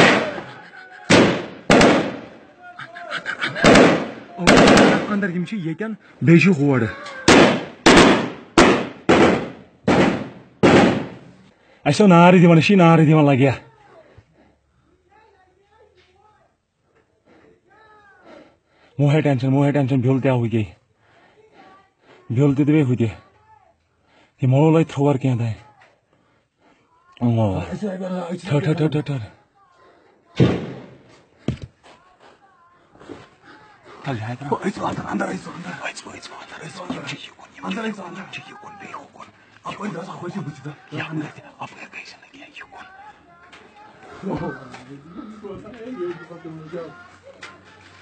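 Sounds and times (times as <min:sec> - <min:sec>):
gunshots with echo: 0:00.0 - 0:00.5, 0:01.1 - 0:02.4, 0:03.6 - 0:05.2, 0:07.3 - 0:11.3, 0:30.4 - 0:31.1
man speaking: 0:02.4 - 0:07.1, 0:27.2 - 0:29.4, 0:33.9 - 0:43.2, 0:44.0 - 0:47.3
loud sudden bang: 0:30.4 - 0:31.0.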